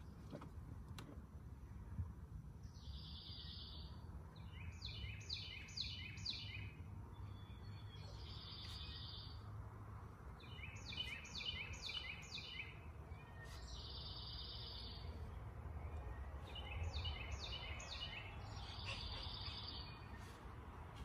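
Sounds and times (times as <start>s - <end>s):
songbird singing: 0.0s - 21.0s.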